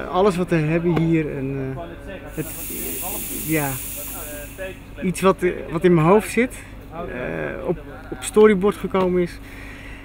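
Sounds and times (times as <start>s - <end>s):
fog machine hissing: 2.3s - 5.3s.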